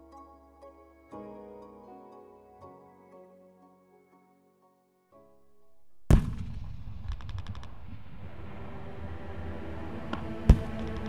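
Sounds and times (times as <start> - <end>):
low rumble: 6.0 - 11.0.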